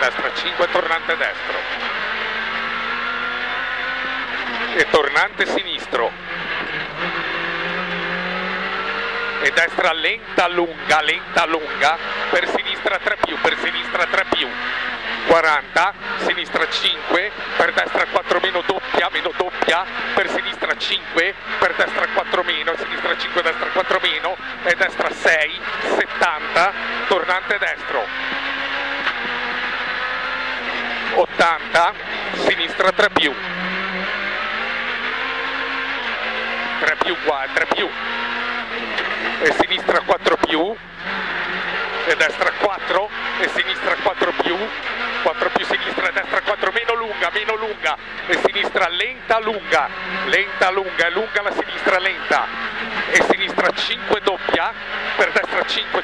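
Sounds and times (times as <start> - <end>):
mechanical and road noise: 0.0 - 56.0
rally car engine from inside cabin: 0.0 - 56.0.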